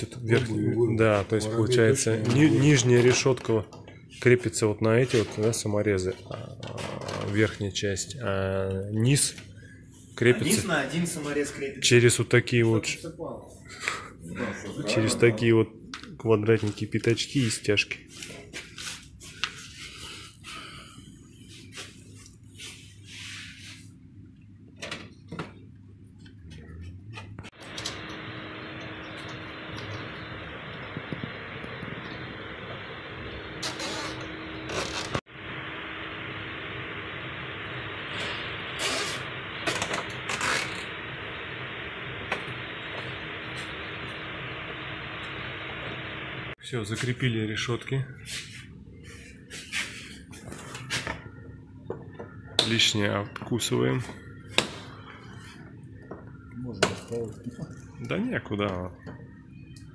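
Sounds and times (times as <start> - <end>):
steady low hum: 0.0 - 59.9.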